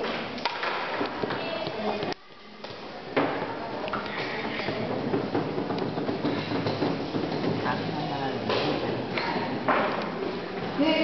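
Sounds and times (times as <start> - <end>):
echoing hall room noise: 0.0 - 11.0.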